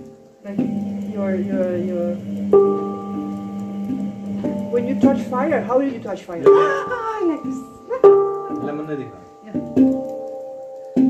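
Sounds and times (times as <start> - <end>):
handpan notes ringing: 0.5 - 11.0.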